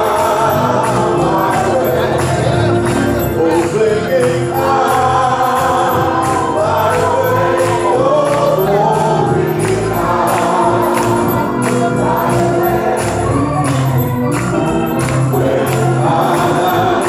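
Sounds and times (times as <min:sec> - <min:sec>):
voices singing gospel music: 0:00.0 - 0:17.0.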